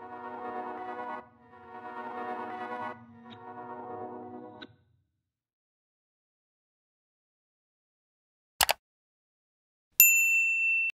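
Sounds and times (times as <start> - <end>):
high bell-like ding: 10.0 - 11.0.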